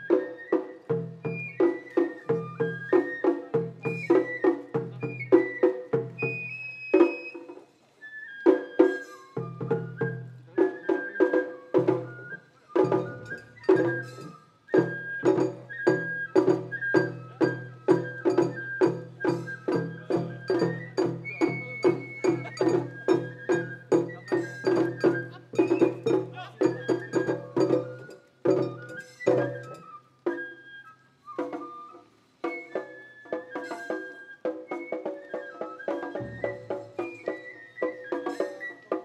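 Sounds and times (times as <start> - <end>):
bamboo flute melody: 0.0 - 39.0
rapid taiko drum strokes: 8.6 - 30.5, 31.2 - 39.0.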